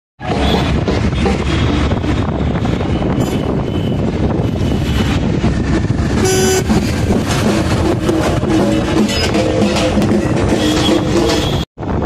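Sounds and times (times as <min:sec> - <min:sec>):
road noise inside moving car: 0:00.2 - 0:09.5
vehicle horn honk: 0:02.9 - 0:05.2, 0:06.2 - 0:06.8, 0:10.5 - 0:11.6.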